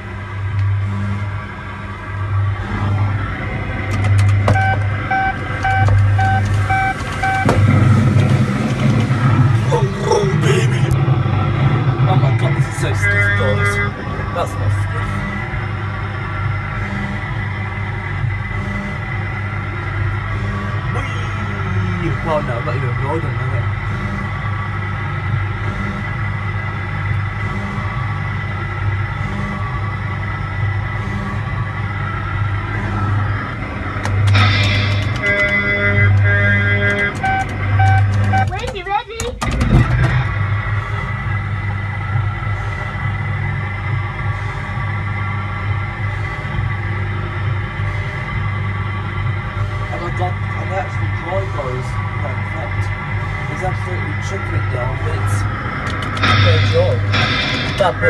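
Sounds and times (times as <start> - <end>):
music and sound effects: 0.0 - 38.5, 39.4 - 58.0
kiddie ride motor humming: 0.0 - 58.0
pulsed beeping tones: 2.3 - 9.8, 34.2 - 38.6, 56.2 - 58.0.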